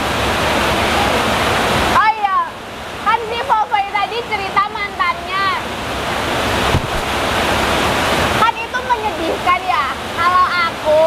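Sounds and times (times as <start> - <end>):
women's voices: 2.0 - 5.6.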